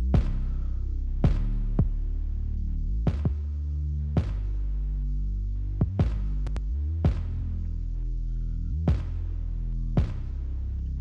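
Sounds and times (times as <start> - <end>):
sustained synth bass: 0.0 - 11.0
kick drum hits: 3.1 - 3.4, 5.8 - 6.4, 8.9 - 9.2.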